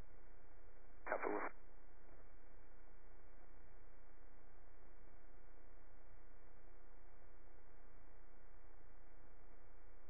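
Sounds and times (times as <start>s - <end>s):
intercom low hum and hiss: 1.1s - 1.5s
tinny radio voice: 1.1s - 1.5s.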